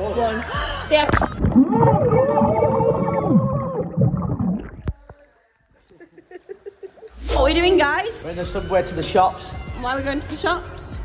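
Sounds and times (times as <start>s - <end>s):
people shouting underwater: 1.6s - 4.0s.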